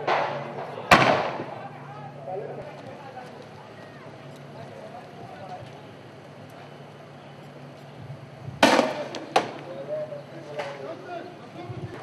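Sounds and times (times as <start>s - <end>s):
sharp bangs: 0.0s - 1.7s, 8.6s - 9.7s.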